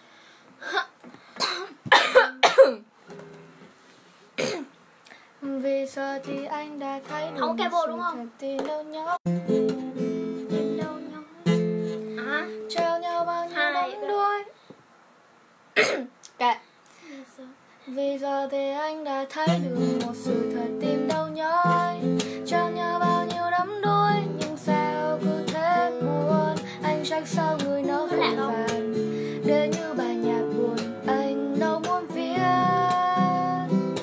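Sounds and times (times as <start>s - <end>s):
woman coughing: 0.7s - 2.9s, 4.4s - 4.7s, 15.8s - 16.1s.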